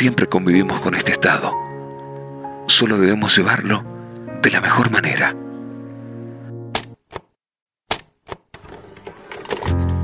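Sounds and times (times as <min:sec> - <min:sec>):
sharp clicks: 0:06.7 - 0:07.3.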